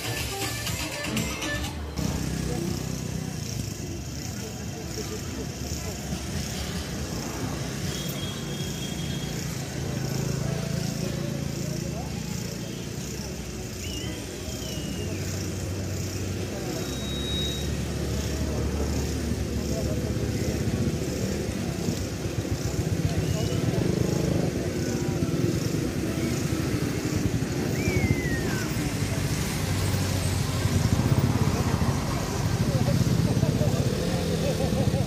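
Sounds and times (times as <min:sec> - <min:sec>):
indistinct voices: 0:00.0 - 0:35.0
faint high whistling glides: 0:12.4 - 0:18.5, 0:24.7 - 0:31.0.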